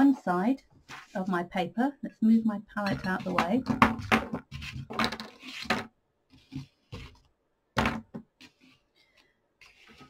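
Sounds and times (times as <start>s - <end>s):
palette scraping across board: 4.4s - 5.8s.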